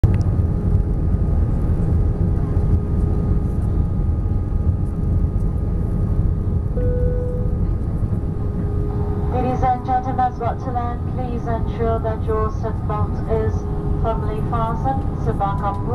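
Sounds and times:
airplane cabin engine noise: 0.0 - 15.9
faint steady whines: 0.1 - 15.9
brief tone: 6.7 - 7.7, 15.3 - 15.9
cabin announcement: 6.8 - 15.9.

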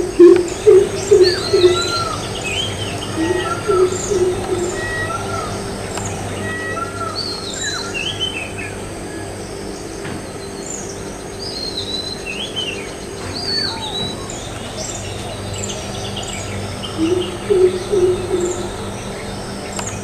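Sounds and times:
low steady hum: 0.0 - 20.0
wild birds chirping: 0.0 - 20.0.

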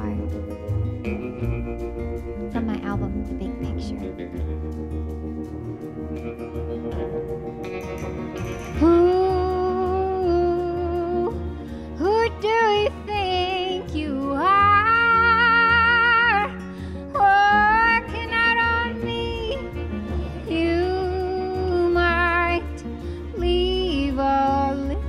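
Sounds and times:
instrumental backing: 0.0 - 25.0
woman singing slow song: 8.8 - 25.0.

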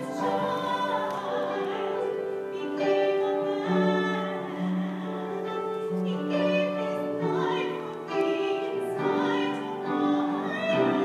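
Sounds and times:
women singing sustained notes: 0.0 - 11.0.

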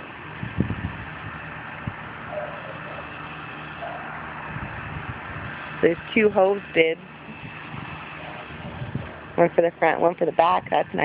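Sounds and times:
low mechanical hum: 0.0 - 11.0
outdoor background hiss: 0.0 - 11.0.

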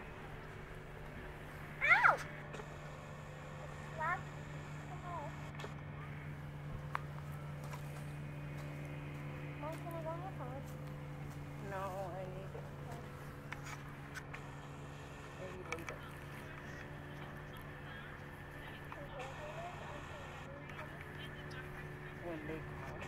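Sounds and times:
low motor hum: 0.0 - 23.0.

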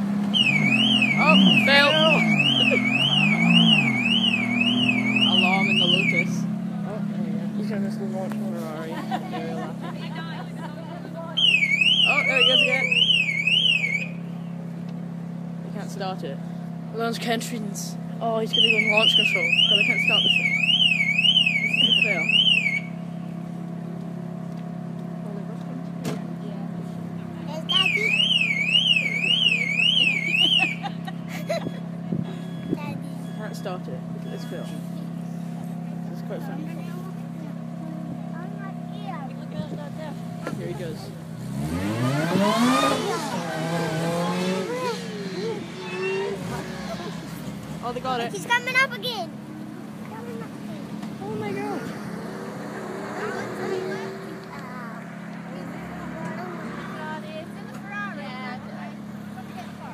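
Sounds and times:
distant sports car engine: 0.0 - 59.9
car alarm siren: 0.2 - 6.5, 11.3 - 14.4, 18.4 - 23.3, 27.6 - 35.2, 41.7 - 47.2
people's voices: 0.4 - 59.9.

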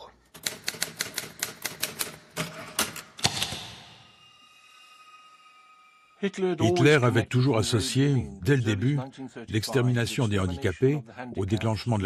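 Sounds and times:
typewriter keys clacking: 0.4 - 3.4.

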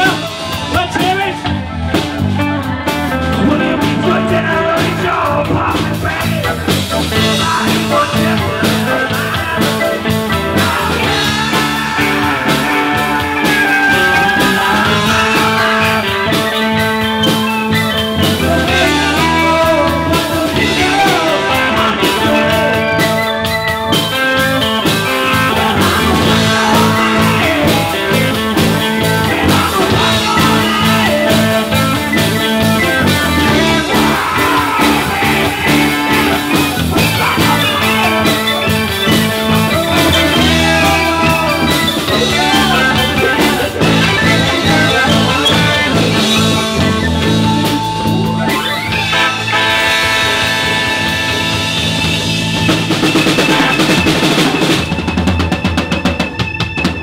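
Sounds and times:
blues-rock band playing: 0.0 - 57.0
harmonica: 7.2 - 57.0.

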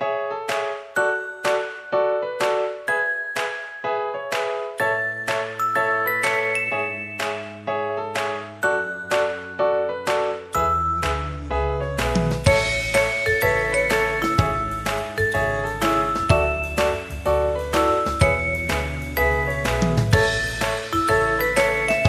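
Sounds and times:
bass line: 10.6 - 22.0.

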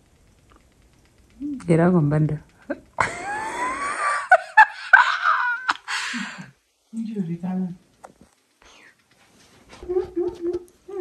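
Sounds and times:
woman wailing: 4.8 - 5.8.

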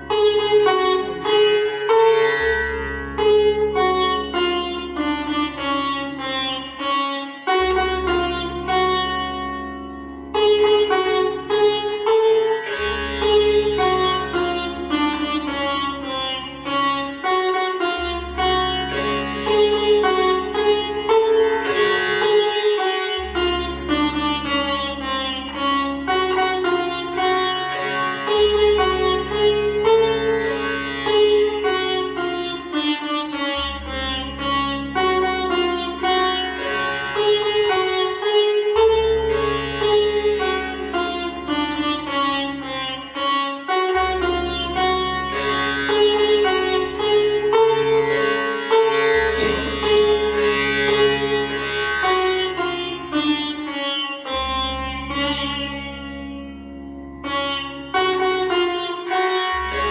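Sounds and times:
sitar music: 0.0 - 59.9.

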